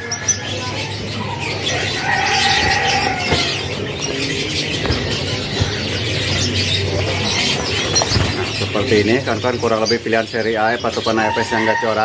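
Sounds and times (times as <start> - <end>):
canaries chirping and trilling: 0.0 - 12.0
wings fluttering: 1.6 - 8.9.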